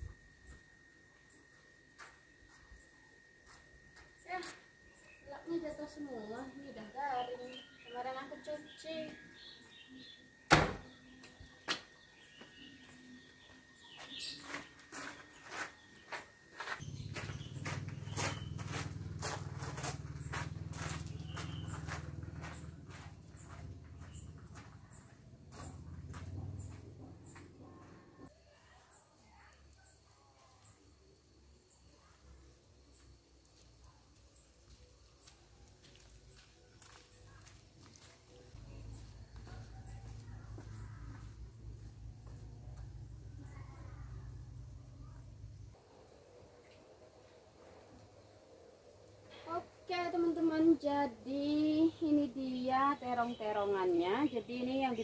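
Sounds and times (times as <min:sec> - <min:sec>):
footsteps on stone and gravel: 0:11.2 - 0:27.6, 0:33.6 - 0:43.0.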